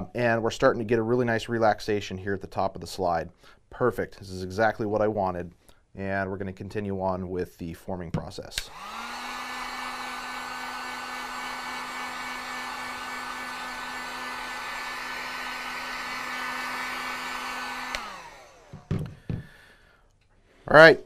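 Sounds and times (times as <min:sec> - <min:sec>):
heat gun fan whine: 0:08.6 - 0:19.6
knocks: 0:18.7 - 0:19.6.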